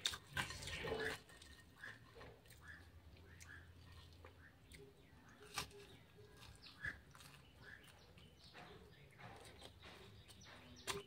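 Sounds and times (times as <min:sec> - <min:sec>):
person chewing: 0:00.0 - 0:11.0.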